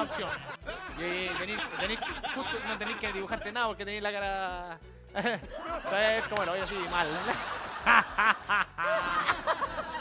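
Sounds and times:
man and woman laughing: 0.0s - 3.5s, 5.2s - 10.0s.

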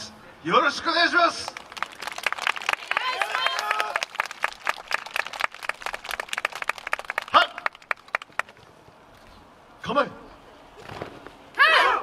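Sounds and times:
audience applause: 1.5s - 8.5s.

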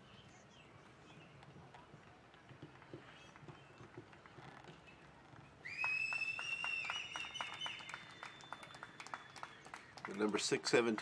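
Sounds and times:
high whistling tone: 5.7s - 9.4s.

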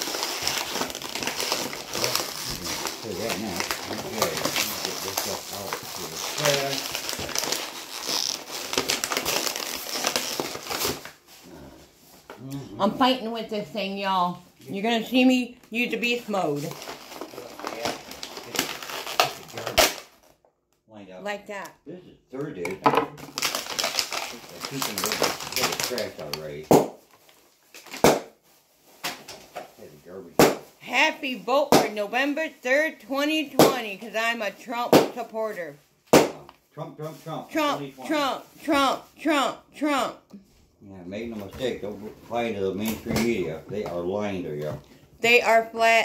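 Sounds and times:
packaging crinkling: 0.0s - 11.4s, 16.6s - 20.4s, 23.2s - 29.6s.

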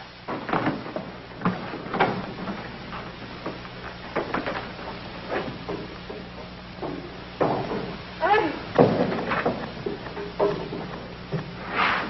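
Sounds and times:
irregular knocks and clunks: 0.0s - 11.6s
steady low hum: 0.0s - 12.0s.

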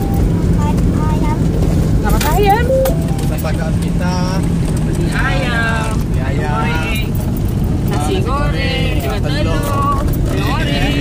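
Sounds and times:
vehicle engine and road rumble: 0.0s - 11.0s.

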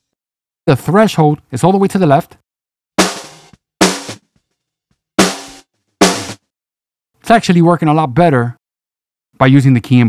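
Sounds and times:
snare drum hits: 3.0s - 4.3s, 5.2s - 6.4s.

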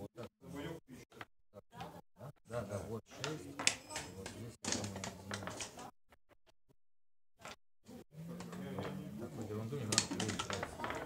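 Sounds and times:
backgammon checkers clicking: 9.8s - 11.0s.

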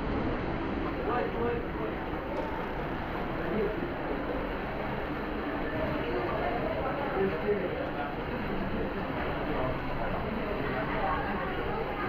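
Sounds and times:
faint voices: 0.7s - 12.0s.

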